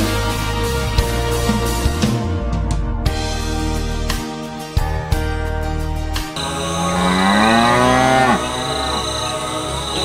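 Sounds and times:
background music: 0.0 - 10.0
cow mooing: 6.4 - 9.6.

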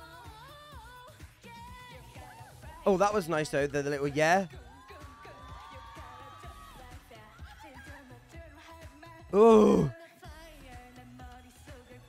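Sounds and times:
pop dance song: 0.0 - 12.0.

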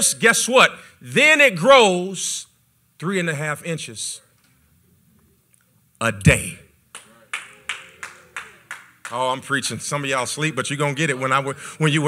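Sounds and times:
hand claps: 6.9 - 9.4.

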